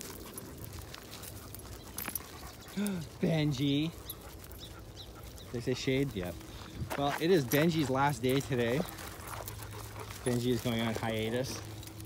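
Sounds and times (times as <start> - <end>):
dog paws on gravel: 0.0 - 12.0
footsteps on gravel: 0.0 - 12.0.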